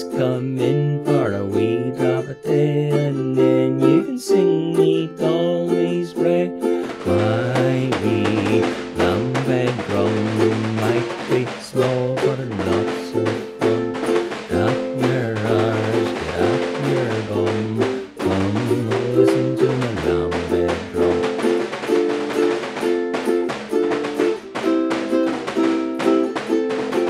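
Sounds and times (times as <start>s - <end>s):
drum beaten with canes: 0.0s - 5.8s, 6.6s - 27.0s
ukulele strumming: 0.0s - 27.0s.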